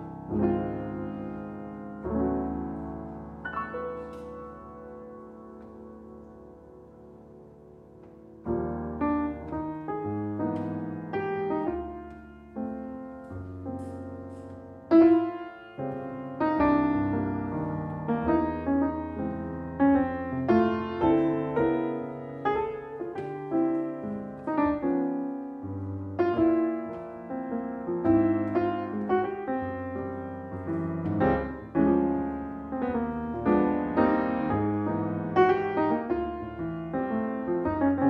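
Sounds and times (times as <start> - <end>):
slow jazz piano ballad: 0.0 - 38.0.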